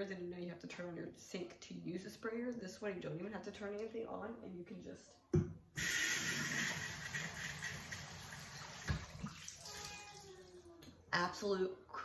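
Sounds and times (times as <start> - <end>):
water spraying from glass rinser: 5.8 - 10.2.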